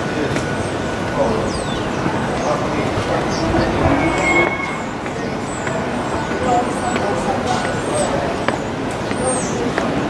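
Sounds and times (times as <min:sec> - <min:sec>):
indistinct voices: 0:01.1 - 0:08.0.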